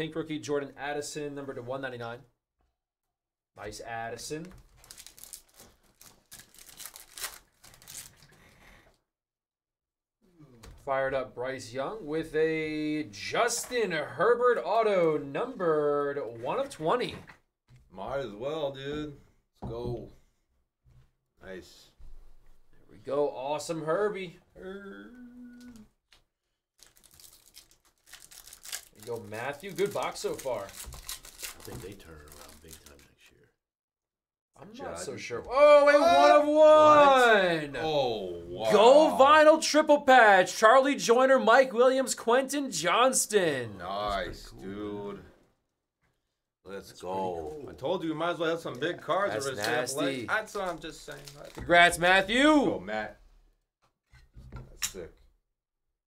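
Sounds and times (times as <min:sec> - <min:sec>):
foil pack crinkling: 0:04.6 - 0:08.4, 0:26.8 - 0:33.1, 0:49.5 - 0:52.0
man speaking: 0:29.0 - 0:30.8, 0:34.6 - 0:45.3, 0:46.7 - 0:53.2.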